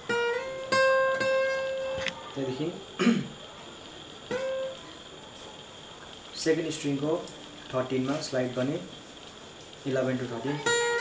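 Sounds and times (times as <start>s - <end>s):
acoustic guitar note: 0.0s - 2.3s
man clearing his throat: 3.0s - 3.4s.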